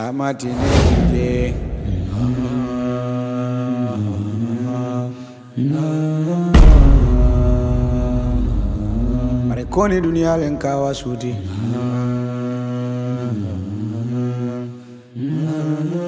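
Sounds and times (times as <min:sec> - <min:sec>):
deep bass: 0:00.5 - 0:03.1, 0:06.6 - 0:11.4.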